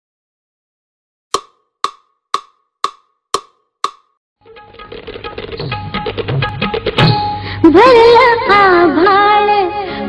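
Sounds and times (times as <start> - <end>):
woodblock-like click: 1.3 - 4.2.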